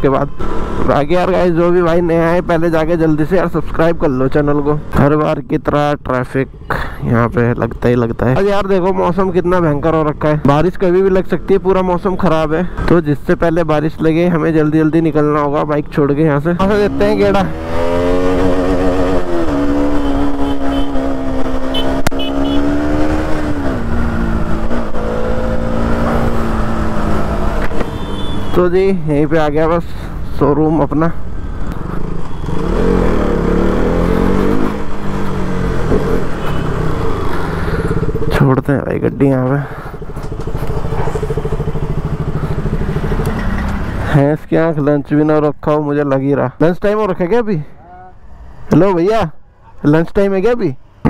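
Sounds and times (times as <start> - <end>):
motorcycle engine cruising: 13.6 - 44.3
motorcycle engine idling: 39.5 - 44.0.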